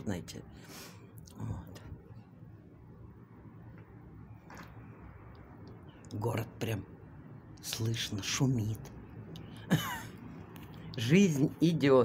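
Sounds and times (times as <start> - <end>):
low hum of city: 0.0 - 12.0.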